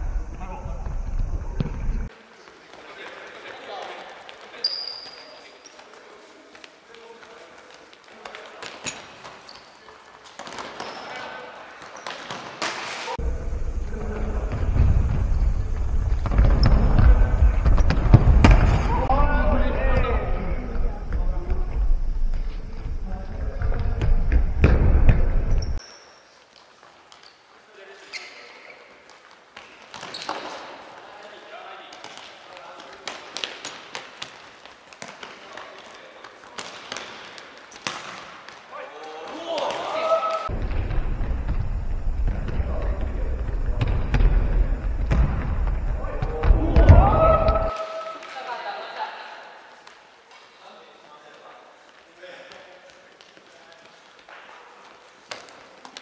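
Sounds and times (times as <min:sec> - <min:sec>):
steady low rumble: 0:00.0 - 0:02.1, 0:13.2 - 0:25.8, 0:40.5 - 0:47.2
ball kicks: 0:13.9 - 0:19.1, 0:40.5 - 0:47.7.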